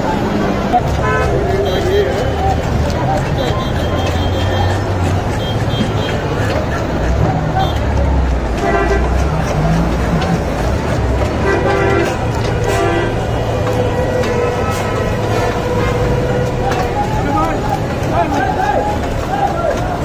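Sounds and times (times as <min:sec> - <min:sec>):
low traffic rumble: 0:00.0 - 0:20.0
vehicle horns: 0:00.6 - 0:20.0.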